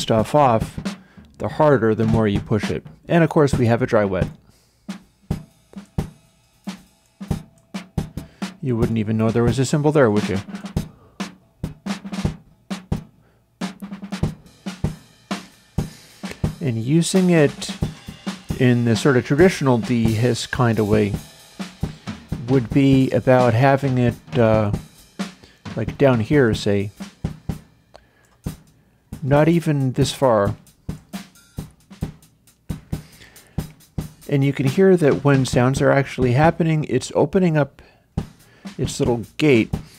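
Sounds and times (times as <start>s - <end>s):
filtered drum kit loop: 0.0s - 39.9s.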